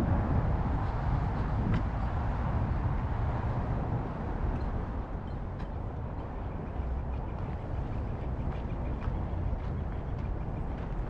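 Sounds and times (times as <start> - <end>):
distant city traffic: 0.0 - 11.0
wind on microphone: 0.0 - 11.0.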